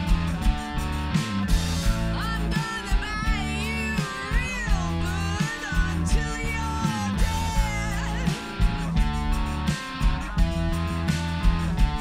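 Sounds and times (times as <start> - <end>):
bass guitar: 0.0 - 12.0
electric guitar: 0.0 - 12.0
woman singing lead: 2.0 - 9.1.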